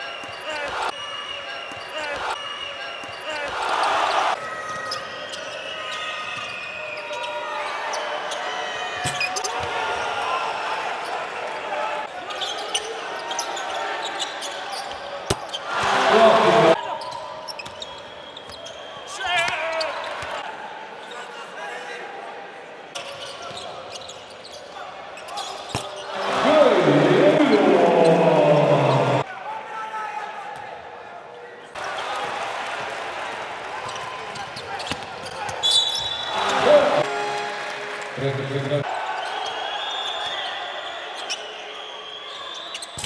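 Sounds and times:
crowd noise: 0:00.0 - 0:19.2, 0:19.8 - 0:29.7, 0:30.3 - 0:43.0
man talking: 0:15.9 - 0:16.8, 0:26.1 - 0:29.2, 0:36.3 - 0:37.4, 0:38.1 - 0:38.8.

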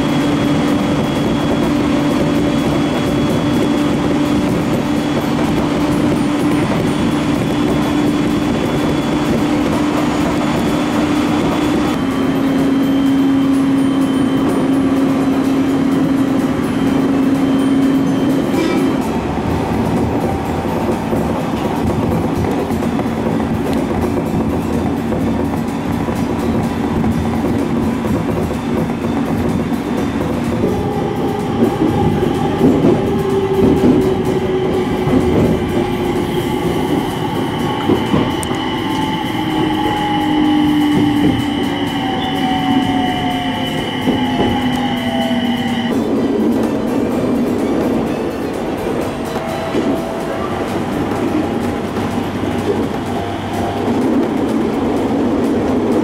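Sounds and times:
train motor whine: 0:00.0 - 0:56.0
train rail and running noise: 0:00.0 - 0:56.0
train wheel clicks: 0:00.0 - 0:56.0.

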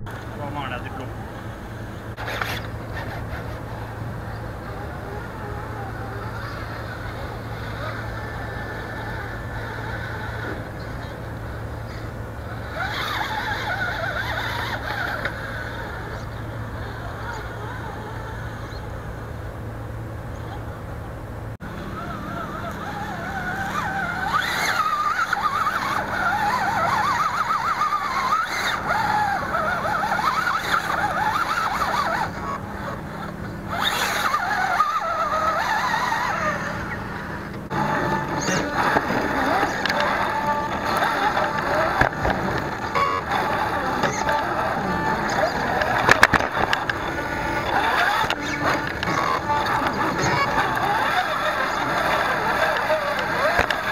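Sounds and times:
rc car electric motor whining: 0:00.0 - 0:53.9.

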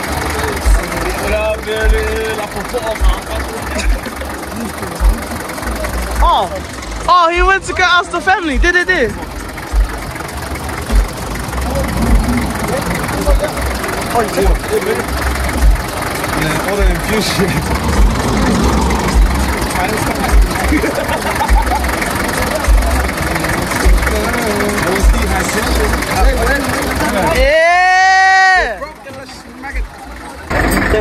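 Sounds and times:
bus engine idling: 0:00.0 - 0:31.0
low thuds: 0:09.7 - 0:10.1, 0:10.8 - 0:14.7, 0:16.8 - 0:20.8.

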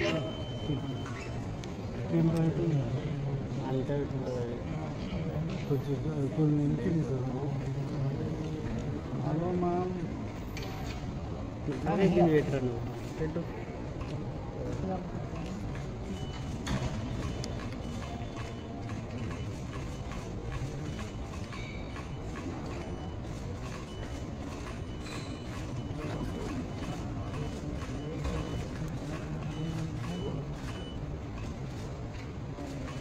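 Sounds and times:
short high beep: 0:00.0 - 0:01.4, 0:22.8 - 0:28.8
busy hall hubbub: 0:00.0 - 0:33.0.

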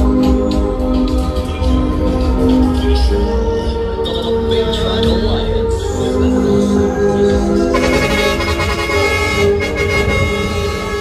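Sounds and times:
music: 0:00.0 - 0:11.0
truck air horns: 0:07.7 - 0:11.0.

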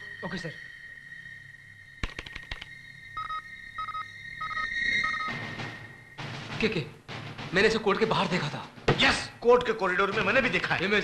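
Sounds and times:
keyboard keystrokes clattering: 0:02.0 - 0:02.7
short electronic beeps: 0:03.2 - 0:05.4.

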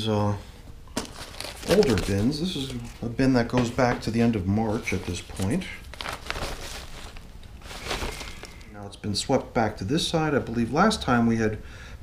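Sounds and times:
damp newspaper rustling: 0:01.0 - 0:08.8.

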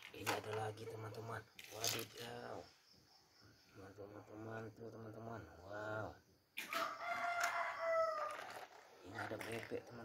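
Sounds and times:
rooster crowing: 0:06.7 - 0:08.7.

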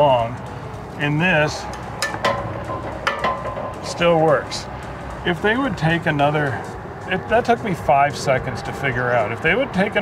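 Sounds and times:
metal clicks and knocks: 0:01.7 - 0:03.9.

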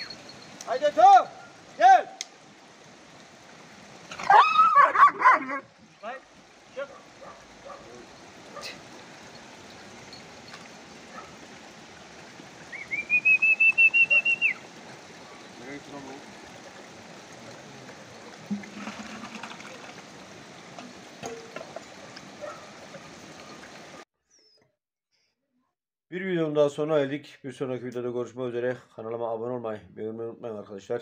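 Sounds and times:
steady outdoor hiss: 0:00.0 - 0:24.0.

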